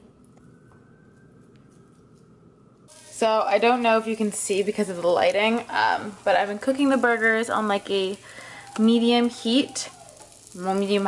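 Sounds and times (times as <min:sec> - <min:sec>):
patties sizzling in frying pan: 0:02.9 - 0:11.0.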